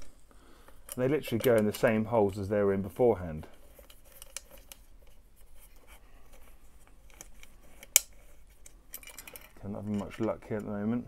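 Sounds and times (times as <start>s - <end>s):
clicks and scrapes of bracket: 3.5s - 10.7s.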